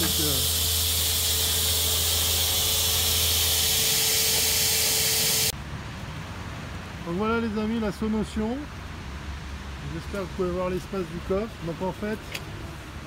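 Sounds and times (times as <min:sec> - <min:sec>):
electric air blower running: 0:00.0 - 0:05.5
outdoor background: 0:00.0 - 0:13.0.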